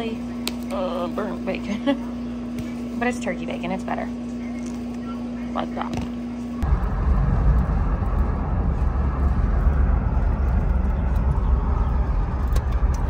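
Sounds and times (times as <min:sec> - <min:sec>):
car engine rumble: 0:06.6 - 0:13.0
road noise: 0:06.6 - 0:13.0.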